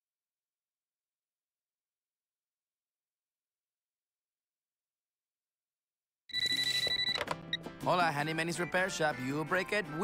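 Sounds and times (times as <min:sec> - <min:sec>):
telephone ringing: 0:06.3 - 0:07.6
music: 0:06.3 - 0:10.0.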